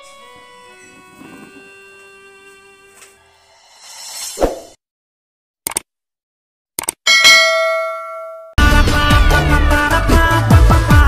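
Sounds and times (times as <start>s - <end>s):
quick clicks: 5.6s - 5.9s, 6.8s - 7.0s
bell ding: 7.1s - 8.6s.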